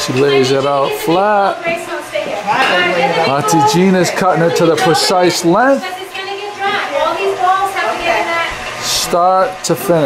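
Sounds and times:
voices talking: 0:00.0 - 0:10.0.

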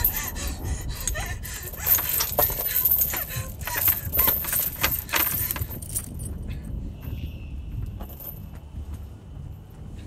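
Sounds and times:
metallic jangling and clinking: 0:00.0 - 0:06.5, 0:08.0 - 0:08.6.

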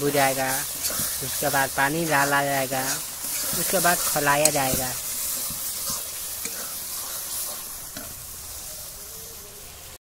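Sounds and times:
spices sizzling in hot oil: 0:00.0 - 0:10.0
metal ladle scraping pan: 0:00.3 - 0:08.3.

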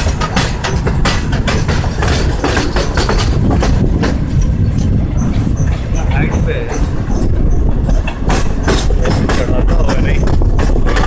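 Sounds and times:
train carriages rumbling on track: 0:00.0 - 0:11.0.

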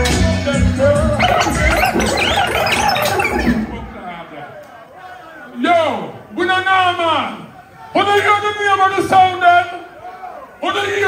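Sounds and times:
reggae music over sound system: 0:00.0 - 0:04.1.

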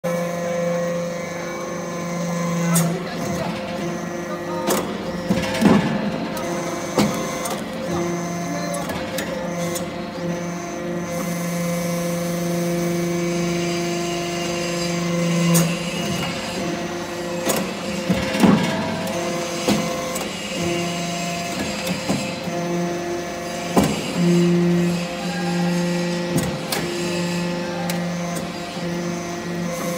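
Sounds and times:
hydraulic press humming: 0:00.0 - 0:29.9.

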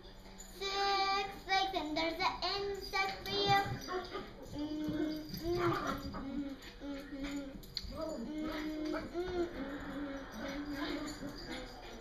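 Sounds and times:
young girl singing: 0:00.5 - 0:10.2.

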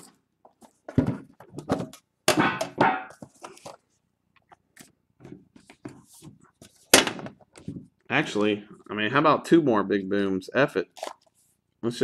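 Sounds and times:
cards and packaging handled: 0:03.1 - 0:07.9, 0:10.9 - 0:11.6.

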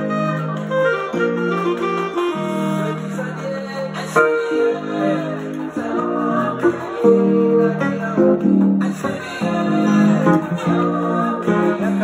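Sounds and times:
electronic keyboard playing gospel: 0:00.0 - 0:12.0.

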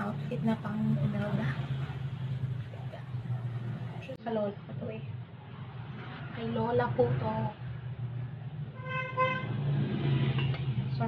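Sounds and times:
vehicle horn toots: 0:08.8 - 0:09.6.

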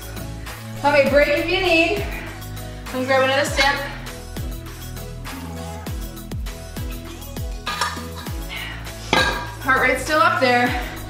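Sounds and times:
background music with steady beat: 0:00.0 - 0:11.0
metal bottle clinking on tiles: 0:07.6 - 0:08.3, 0:09.1 - 0:09.6.

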